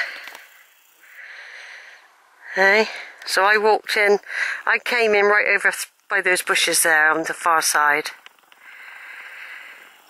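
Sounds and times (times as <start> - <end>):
person breathing close to microphone: 0.0 - 3.2, 4.2 - 4.7, 8.6 - 10.0.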